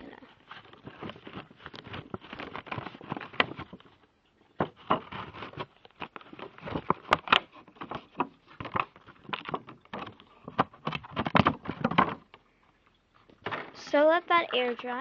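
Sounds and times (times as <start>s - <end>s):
crackles and clicks of handled objects: 0.0s - 15.0s.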